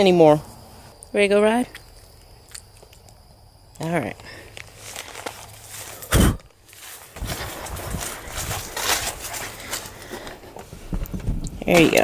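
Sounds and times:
footsteps: 0:04.2 - 0:12.0
rustling and scuffing on seat: 0:04.6 - 0:12.0.

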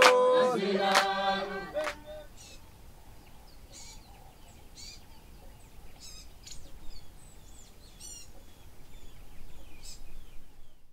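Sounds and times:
birds chirping: 0:00.0 - 0:10.9.

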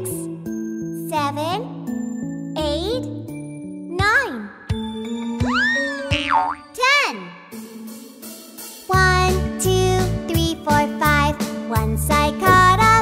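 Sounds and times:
children's song backing music: 0:00.0 - 0:13.0.

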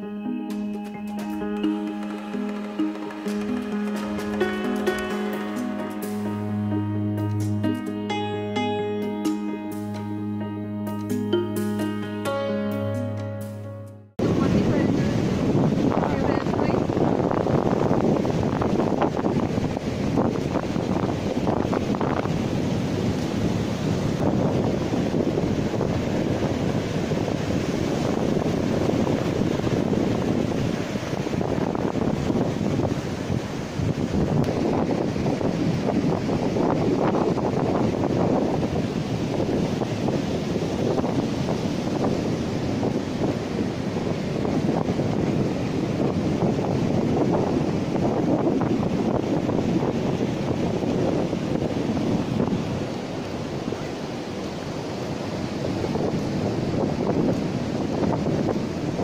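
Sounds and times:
sea surf breaking: 0:00.0 - 0:13.6, 0:14.2 - 0:59.0
wind buffeting microphone: 0:14.2 - 0:59.0.

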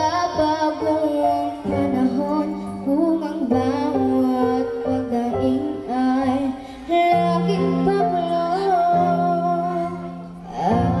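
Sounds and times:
girl singing into microphone: 0:00.0 - 0:11.0.

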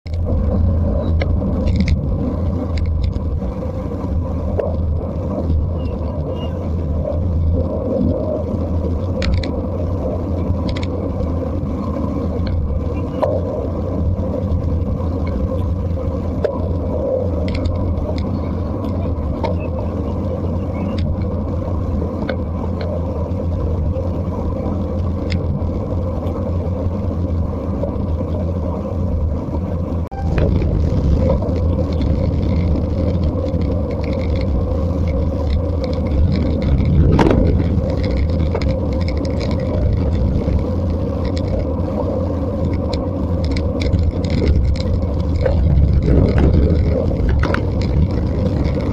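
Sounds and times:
tyre and road rumble: 0:00.0 - 0:48.9
wind roar on microphone: 0:00.1 - 0:48.9
scattered clicks: 0:01.1 - 0:03.3, 0:09.0 - 0:09.6, 0:10.4 - 0:11.0, 0:30.1 - 0:41.9, 0:42.6 - 0:48.9.

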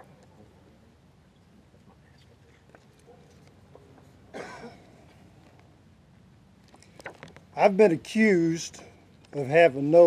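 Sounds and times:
person coughing: 0:04.3 - 0:04.9.

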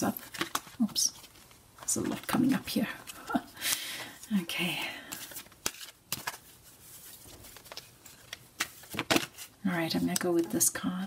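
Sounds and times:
cards rustling: 0:00.1 - 0:10.6.

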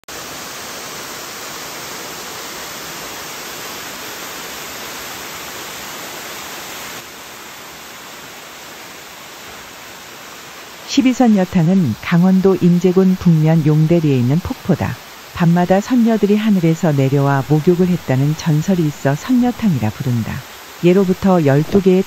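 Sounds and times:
waterfall rushing: 0:00.1 - 0:22.0.

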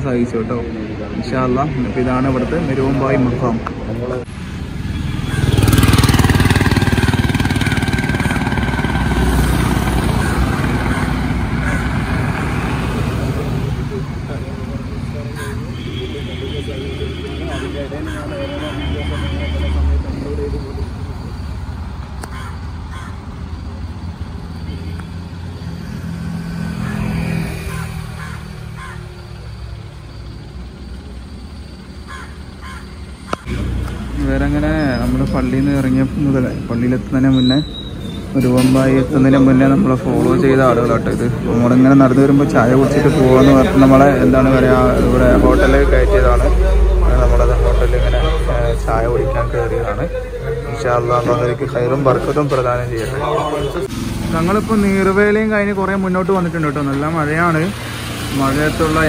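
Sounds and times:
engine and road noise rumble: 0:00.0 - 0:59.0.

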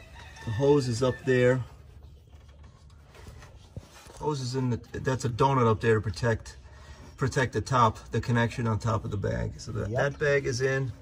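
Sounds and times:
soft rubbing noises: 0:00.0 - 0:07.9.

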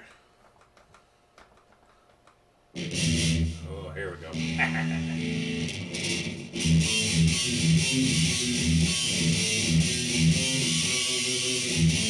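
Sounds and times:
distorted electric guitar chord: 0:02.8 - 0:12.0.

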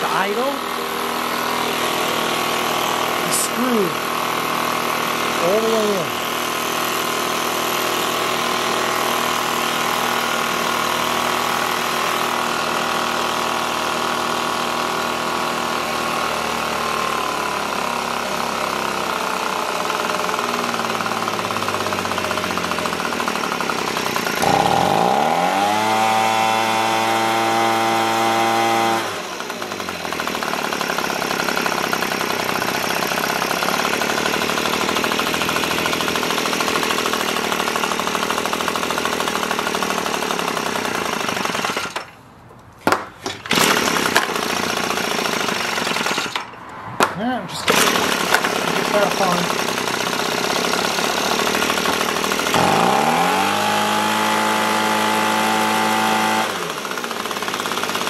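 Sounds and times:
leaf blower engine revving: 0:00.0 - 0:42.2, 0:43.2 - 0:58.0.

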